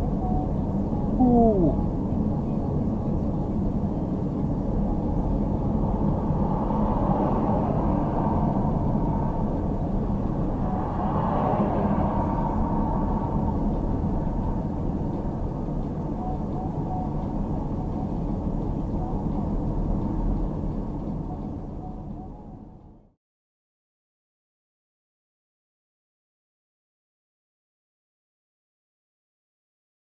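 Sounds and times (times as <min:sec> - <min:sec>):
engine and tyre drone on wet road: 0:02.0 - 0:22.7.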